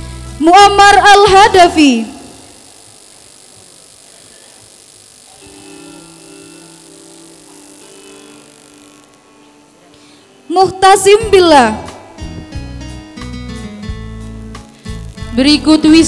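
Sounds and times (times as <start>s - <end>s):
faint background music: 5.5s - 16.0s.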